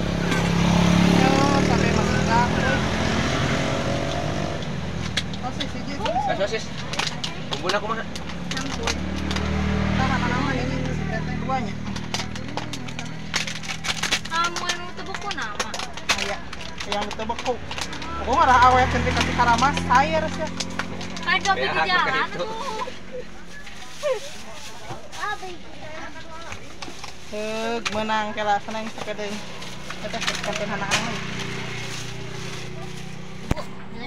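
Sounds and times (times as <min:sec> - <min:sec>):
voices talking and calling out: 0:00.0 - 0:34.0.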